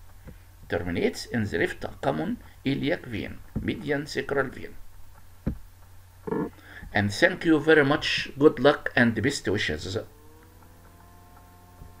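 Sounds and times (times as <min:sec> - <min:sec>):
faint electrical hum: 0:00.0 - 0:12.0
soft bump: 0:05.4 - 0:05.7.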